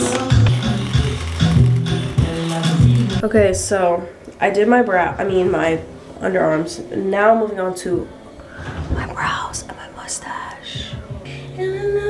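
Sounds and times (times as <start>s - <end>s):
woman whispering: 8.7s - 11.0s.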